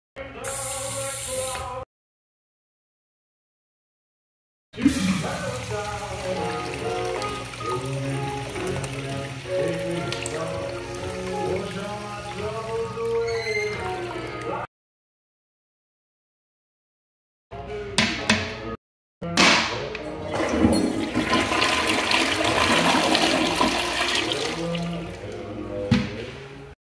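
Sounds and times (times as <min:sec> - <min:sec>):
water running into sink basin: 0:04.8 - 0:14.6, 0:20.3 - 0:25.5
background music: 0:04.8 - 0:14.7, 0:17.6 - 0:26.8
toilet flushing: 0:04.8 - 0:14.7, 0:20.2 - 0:25.8.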